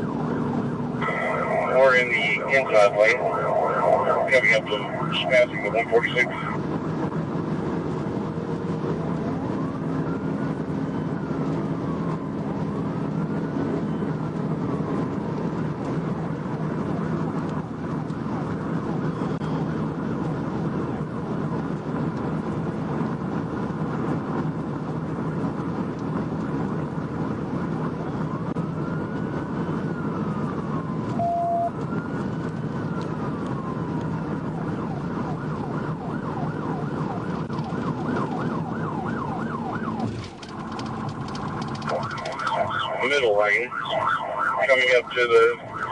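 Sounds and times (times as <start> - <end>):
police siren wailing: 0.0 - 21.5, 26.9 - 45.9
road and engine noise: 0.0 - 45.9
siren fast yelp: 1.0 - 6.6, 31.2 - 31.8, 41.9 - 45.9
short beep: 31.2 - 31.7.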